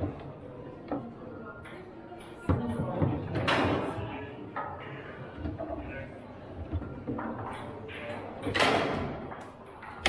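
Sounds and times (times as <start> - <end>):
murmur of voices: 0.0 - 10.0.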